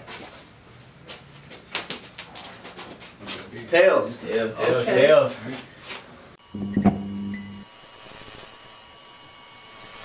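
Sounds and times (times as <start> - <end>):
coin bouncing on floor: 1.7 - 2.6.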